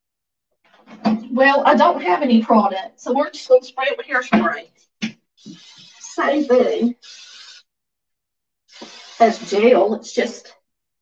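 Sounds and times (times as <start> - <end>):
aerosol can spraying: 5.4 - 7.6, 8.7 - 10.0.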